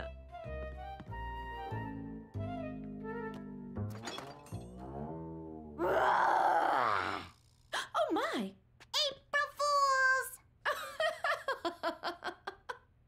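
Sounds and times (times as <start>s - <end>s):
background music: 0.0s - 5.8s
woman shrieking: 5.8s - 7.3s.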